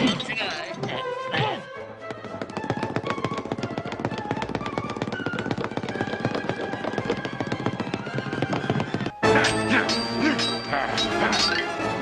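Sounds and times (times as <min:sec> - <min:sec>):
orchestral cartoon fight music: 0:09.2 - 0:12.0.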